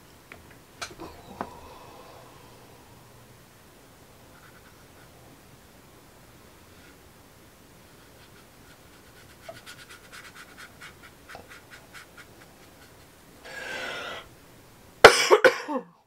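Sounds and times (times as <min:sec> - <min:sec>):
breath drawn in: 0:01.0 - 0:03.4, 0:13.4 - 0:14.3
brush scratching on paper: 0:04.3 - 0:05.2, 0:07.8 - 0:13.2
person coughing: 0:15.0 - 0:16.0.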